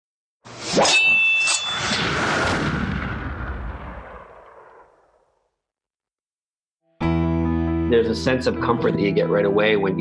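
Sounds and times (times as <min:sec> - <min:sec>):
rumbling explosion-like burst: 0:02.0 - 0:05.4.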